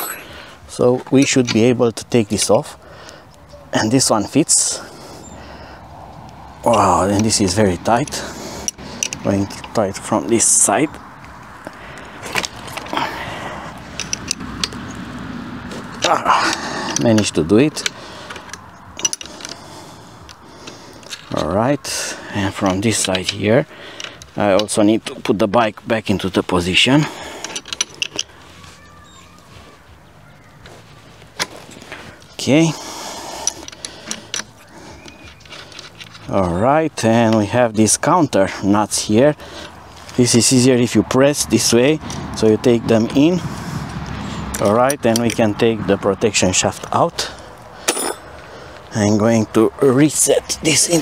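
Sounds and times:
wrench clicking and scraping: 8.0 - 9.8, 13.8 - 14.9, 16.0 - 21.4, 27.2 - 28.4, 33.0 - 36.4
metal tools clicking and knocking: 13.9 - 14.8, 16.0 - 19.6, 27.4 - 28.3, 47.8 - 48.3
rustle: 22.9 - 37.5, 38.5 - 40.8.

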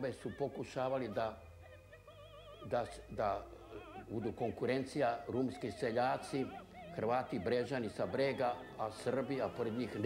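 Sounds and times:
elderly man speaking: 0.0 - 1.5, 2.6 - 10.0
faint background music: 0.0 - 10.0.

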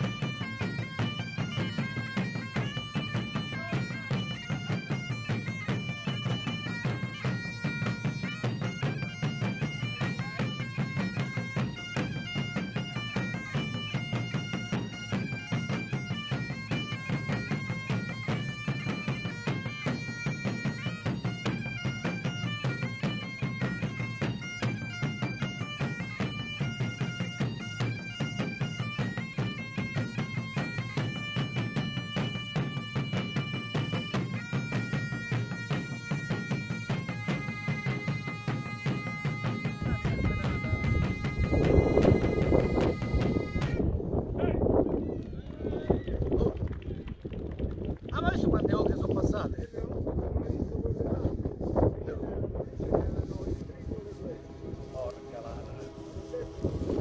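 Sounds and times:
bagpipe music: 0.0 - 45.2, 52.5 - 57.0.

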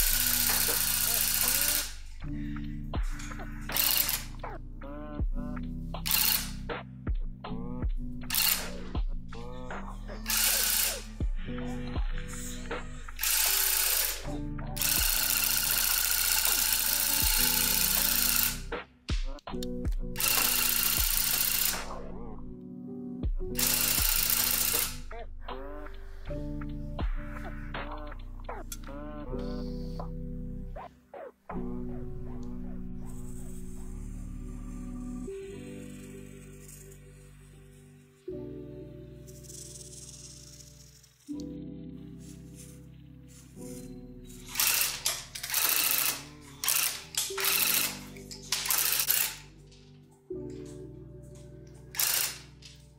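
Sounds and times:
electric tufting gun running: 0.0 - 2.1, 3.7 - 4.3, 10.3 - 11.1, 13.2 - 18.7, 20.2 - 21.9, 23.6 - 25.0, 44.4 - 49.5, 52.0 - 52.5
held keyboard chord: 10.2 - 18.7.

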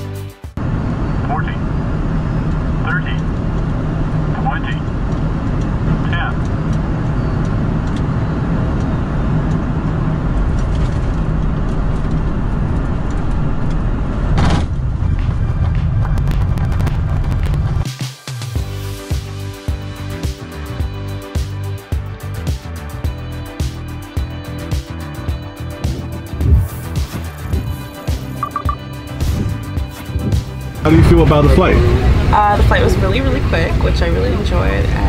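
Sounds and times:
aircraft airflow and engine rush: 0.0 - 35.0
short rising chirps: 28.4 - 29.0.

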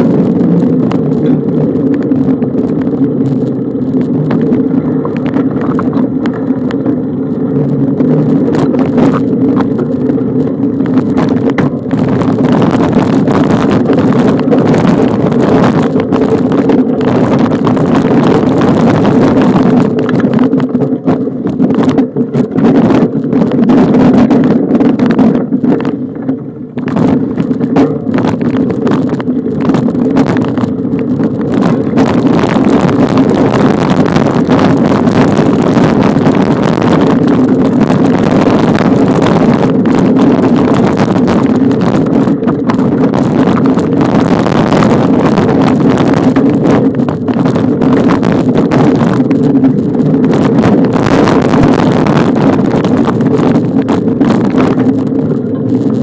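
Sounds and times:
bicycle rattles and jolts: 0.0 - 56.0
bicycle ride rumble: 0.0 - 56.0
wind buffeting microphone: 0.0 - 56.0.

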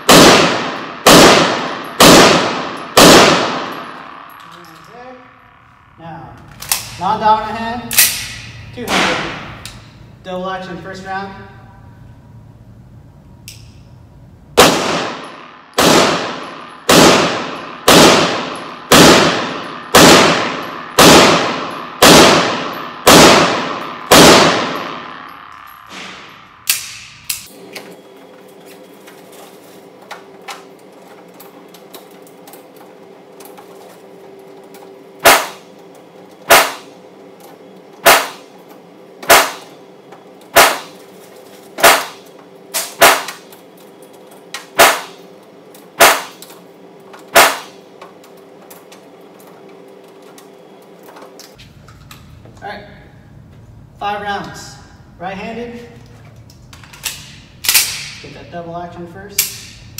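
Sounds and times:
pistol shots ringing: 0.0 - 6.0, 7.8 - 9.6, 14.6 - 27.6, 35.2 - 35.8, 36.4 - 38.6, 39.2 - 41.0, 41.7 - 44.0, 44.6 - 46.4, 47.3 - 48.0, 57.1 - 58.3.

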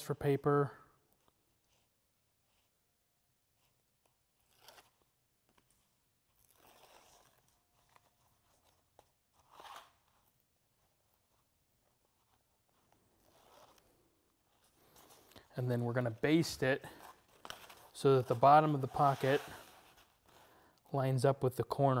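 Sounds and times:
paper liner peeling off tape: 3.6 - 14.8.

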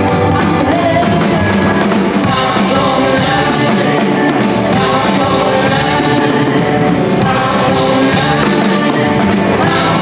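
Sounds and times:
drums and cymbals: 0.0 - 10.0
electric guitars: 0.0 - 10.0
woman singing: 0.3 - 10.0.

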